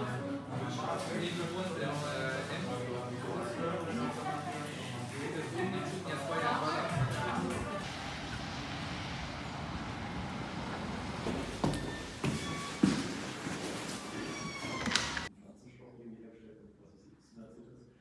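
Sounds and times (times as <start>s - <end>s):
outdoor ambience: 7.0s - 15.3s
door handle squeak: 11.7s - 13.3s, 13.9s - 15.3s.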